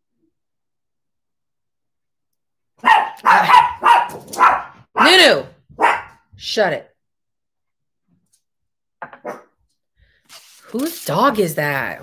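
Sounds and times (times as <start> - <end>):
dog barking: 2.8 - 6.3, 9.2 - 9.6.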